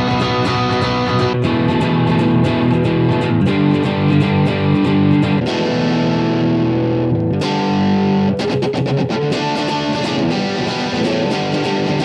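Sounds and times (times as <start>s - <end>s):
strummed electric guitar riff: 0.0s - 12.0s.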